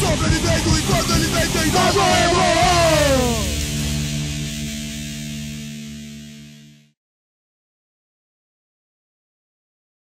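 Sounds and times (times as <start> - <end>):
electric guitar chord ringing: 0.0 - 7.0.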